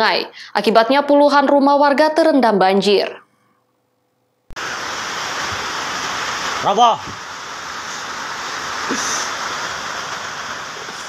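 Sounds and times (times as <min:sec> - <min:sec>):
floodwater rushing: 0:04.6 - 0:11.0.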